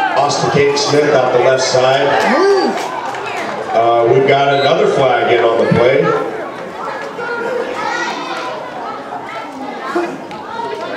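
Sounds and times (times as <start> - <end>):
children calling and chattering: 0.0 - 10.9.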